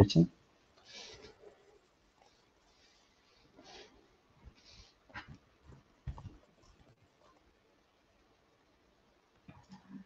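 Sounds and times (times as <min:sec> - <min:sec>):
soft bumps: 0:04.5 - 0:07.0.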